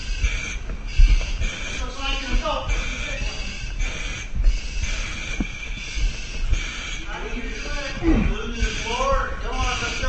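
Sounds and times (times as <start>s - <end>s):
heavy rapid breathing: 0.0s - 10.0s.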